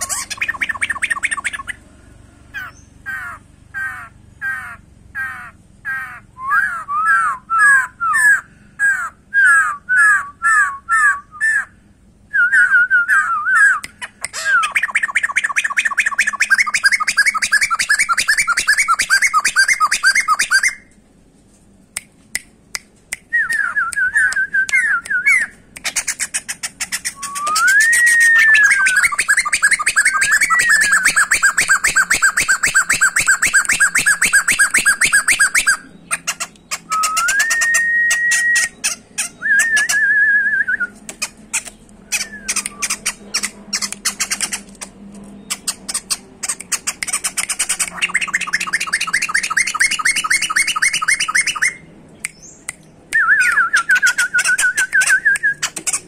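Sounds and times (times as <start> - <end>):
bird singing whistled trills: 0.0 - 1.8, 6.4 - 8.4, 12.3 - 20.9, 23.3 - 26.2, 26.8 - 41.0, 42.0 - 44.6, 45.4 - 56.0.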